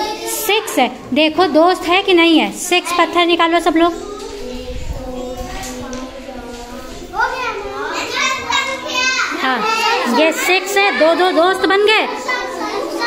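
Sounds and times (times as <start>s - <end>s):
children chattering and calling out: 0.0s - 13.0s.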